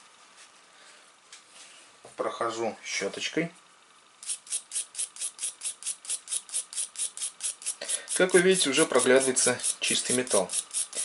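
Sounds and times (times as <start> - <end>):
brush scrubbing a coin: 5.1 - 11.0.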